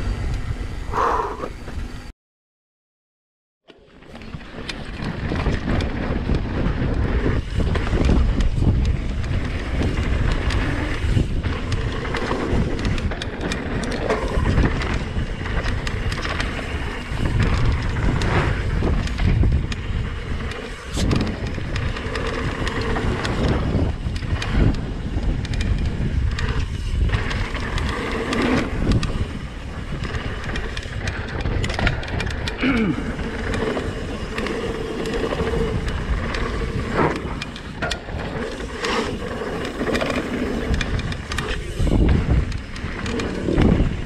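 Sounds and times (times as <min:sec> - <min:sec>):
bike rattling and knocking: 0:04.0 - 0:44.0
tyre noise on dirt: 0:04.2 - 0:44.0
wind rush on microphone: 0:04.4 - 0:44.0.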